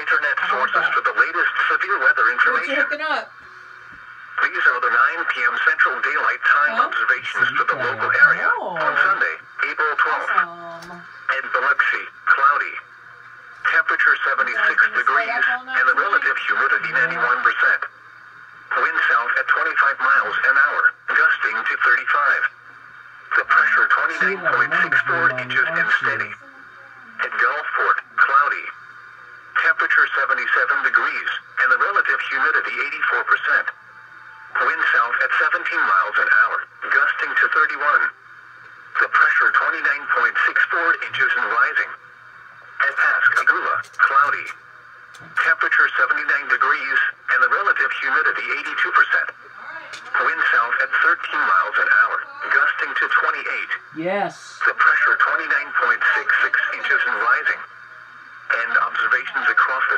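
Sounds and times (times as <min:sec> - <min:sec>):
automated voice on tinny radio: 0:00.0 - 0:18.0, 0:18.8 - 0:42.0, 0:42.7 - 0:59.9.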